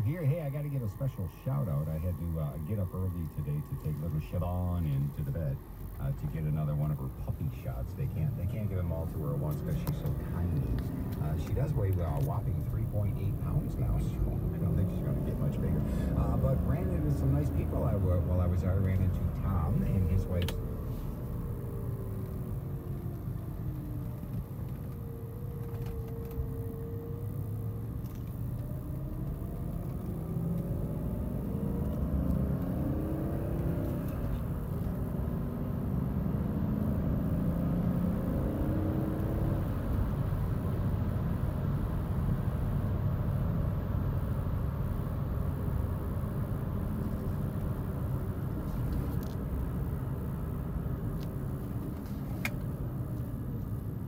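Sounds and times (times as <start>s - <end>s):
car engine accelerating: 0.0s - 54.0s
road noise: 0.0s - 54.0s.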